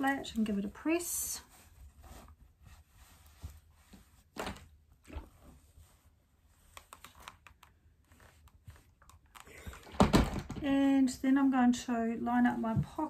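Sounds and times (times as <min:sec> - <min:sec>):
fabric rustling: 0:00.0 - 0:09.1.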